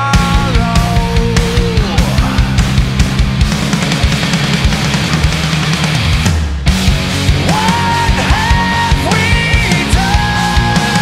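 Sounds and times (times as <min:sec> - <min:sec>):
hard rock band playing: 0:00.0 - 0:11.0.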